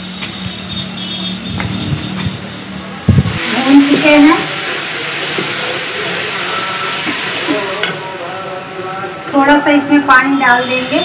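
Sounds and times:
food sizzling in a pan: 3.2s - 11.0s.

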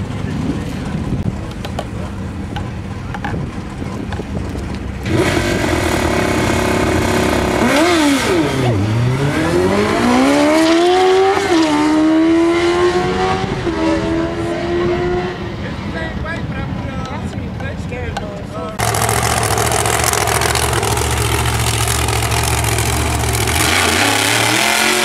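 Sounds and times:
motorcycle engine revving: 5.0s - 15.5s, 18.8s - 25.0s.

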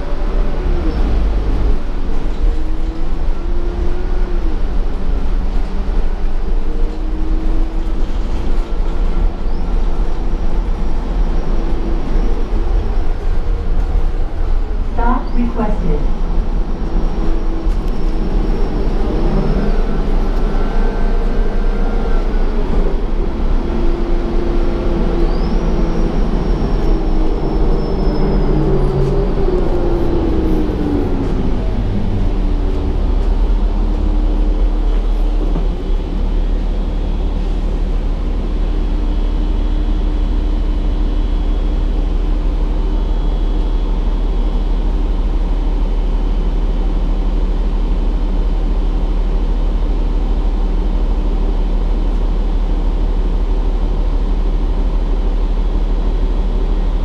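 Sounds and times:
bus engine and road rumble: 0.0s - 57.0s.

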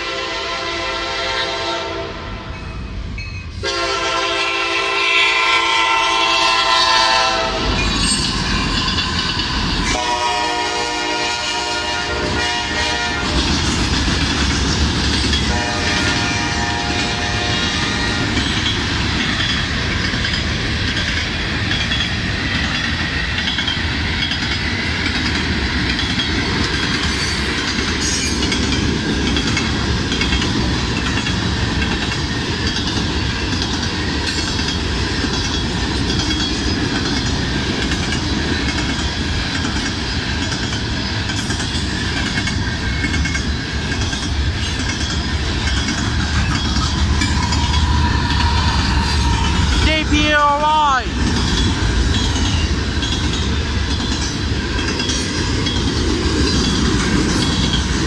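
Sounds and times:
freight train rumble: 0.0s - 58.0s
locomotive passing: 0.7s - 58.0s
wheels clacking over rail joints: 13.1s - 49.9s, 51.1s - 58.0s.

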